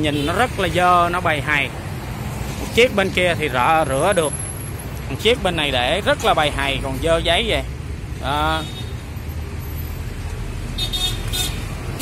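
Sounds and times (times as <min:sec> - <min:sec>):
motor engine rumbling: 0:00.1 - 0:08.4.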